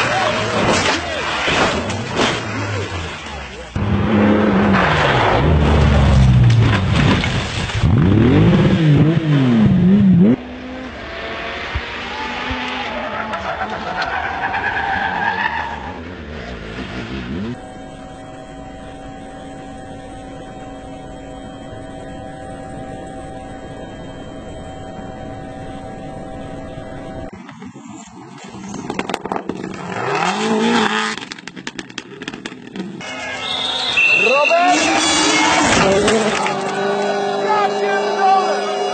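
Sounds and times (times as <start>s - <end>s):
rally car engines: 0.0s - 38.9s.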